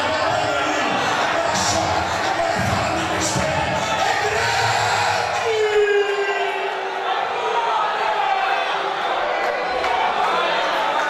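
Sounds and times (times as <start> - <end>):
congregation calling out and shouting: 0.0 - 11.0.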